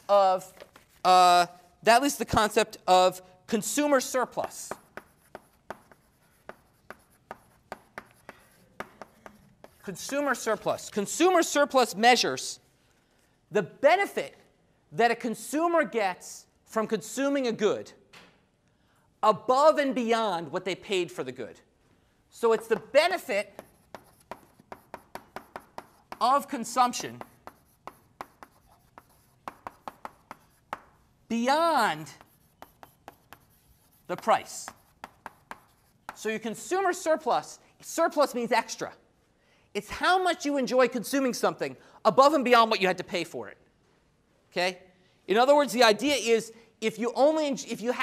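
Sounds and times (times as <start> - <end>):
chalk scraping: 0.0 - 1.6, 3.6 - 10.9, 22.4 - 31.0, 31.7 - 36.3
chalk tapping on blackboard: 4.0 - 10.7, 22.5 - 31.1, 31.8 - 36.3.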